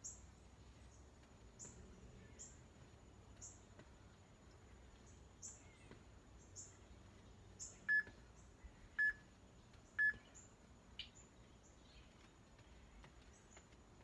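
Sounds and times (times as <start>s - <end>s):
faint bird chirps: 4.8s - 13.7s
short electronic beeps: 7.9s - 8.1s, 9.0s - 9.2s, 10.0s - 10.2s.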